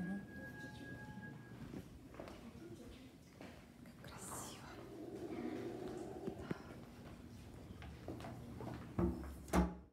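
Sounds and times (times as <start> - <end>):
faint whisper: 3.8 - 7.2.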